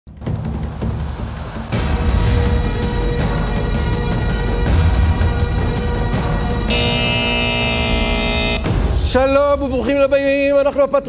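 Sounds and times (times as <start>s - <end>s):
bright sustained chord: 6.7s - 8.6s.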